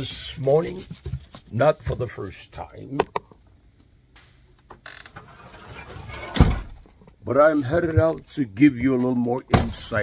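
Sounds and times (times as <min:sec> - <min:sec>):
door opening and shutting: 0:04.6 - 0:07.1.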